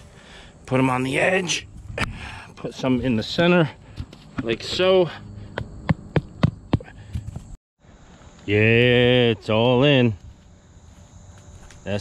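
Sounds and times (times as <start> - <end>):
hammer knocking stakes: 4.0 - 7.4.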